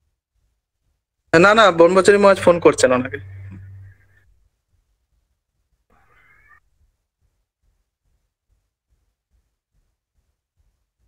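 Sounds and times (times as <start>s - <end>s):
faint high-pitched cry: 5.9s - 6.8s.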